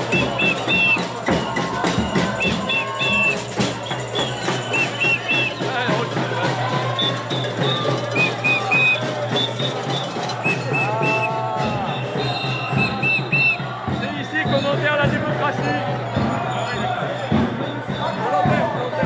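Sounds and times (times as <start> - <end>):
crowd: 0.0 - 19.0
march music with steady beat: 0.0 - 19.0
short whistle blasts: 0.1 - 5.8, 6.8 - 13.7.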